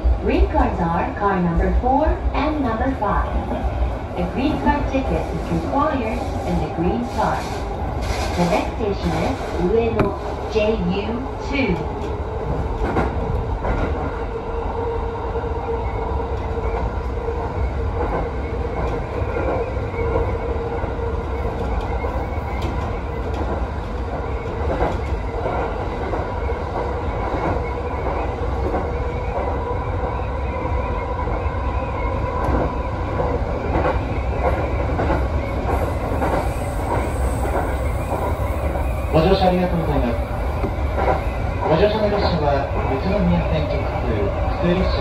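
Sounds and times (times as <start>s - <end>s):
train whine: 0.0s - 45.0s
wheels rumbling on rail: 0.0s - 45.0s.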